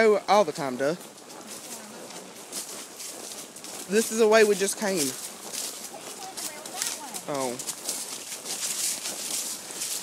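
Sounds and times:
hooves through dry leaves: 0.0s - 10.0s.

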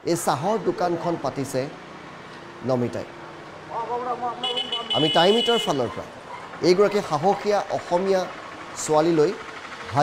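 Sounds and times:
roadside street noise: 0.0s - 10.0s.

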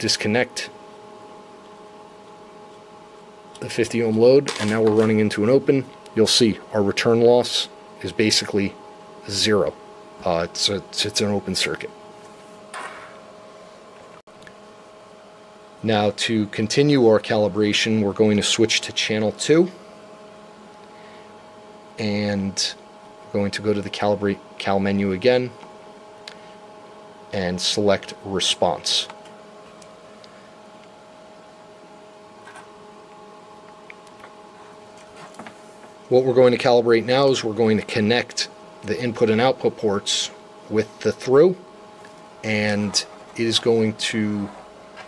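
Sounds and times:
test equipment hum: 0.0s - 45.0s.

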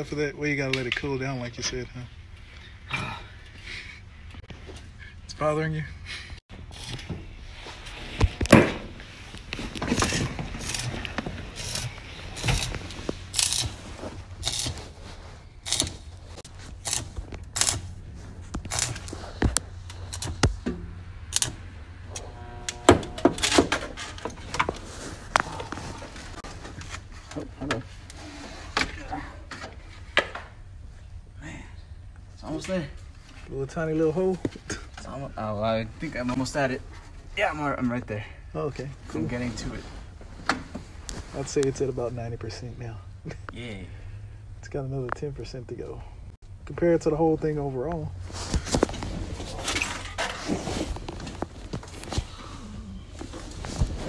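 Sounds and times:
steady low hum: 1.4s - 54.0s
arc welder crackles: 9.3s - 15.0s, 15.6s - 20.6s, 21.3s - 23.6s.

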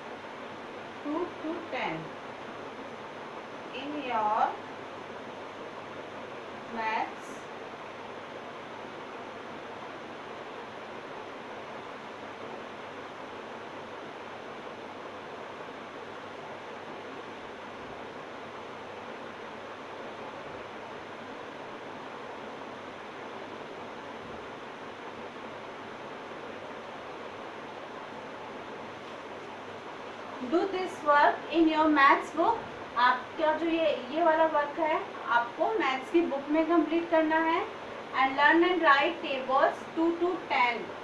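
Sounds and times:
steady background hiss: 0.0s - 41.0s.

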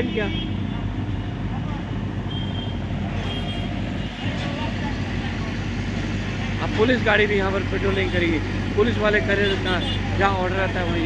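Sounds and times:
diesel engine running: 0.8s - 11.0s.

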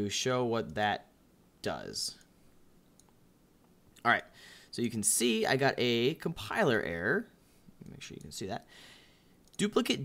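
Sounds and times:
computer mouse click: 2.2s - 3.2s.

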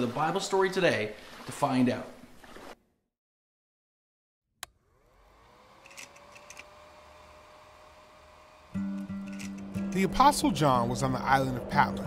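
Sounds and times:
projector motor whine and hum: 4.8s - 9.7s.

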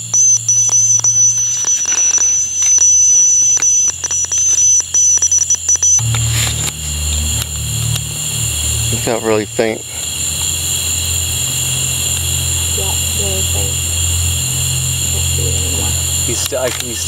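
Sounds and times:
low hum: 0.0s - 17.0s
steady high-pitched tone: 0.0s - 17.0s.

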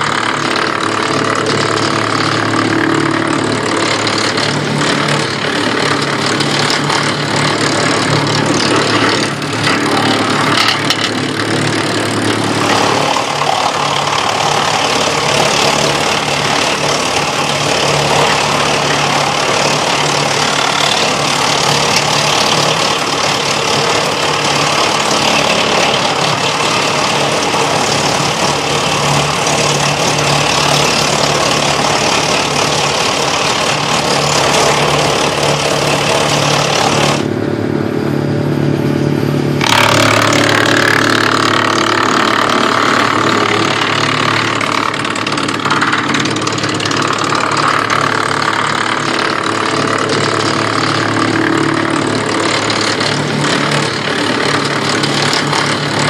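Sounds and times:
tractor engine humming: 0.0s - 56.0s
wood chipper chipping branches: 0.0s - 56.0s.

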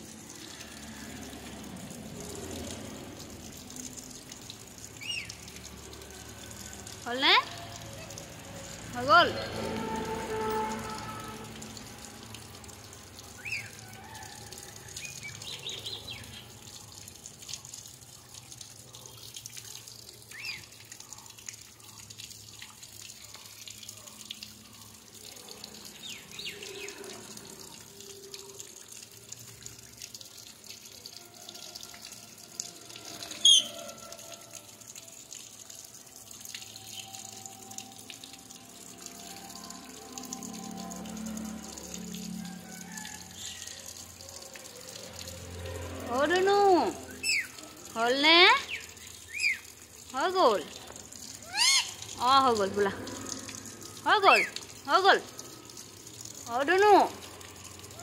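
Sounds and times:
water trickling and splashing: 0.0s - 58.0s
parrot chirping: 33.4s - 33.8s, 47.2s - 47.5s, 48.7s - 49.6s, 51.4s - 52.0s.

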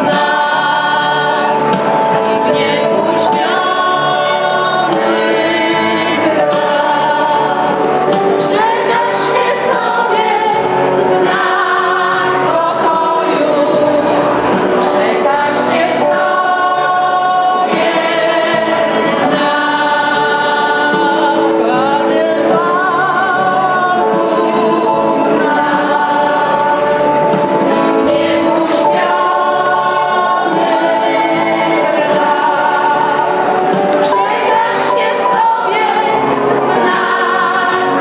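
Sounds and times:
choir singing a carol: 0.0s - 38.0s.

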